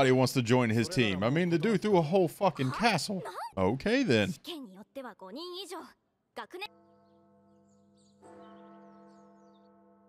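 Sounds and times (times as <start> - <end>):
faint large bell ringing: 6.6 - 10.0.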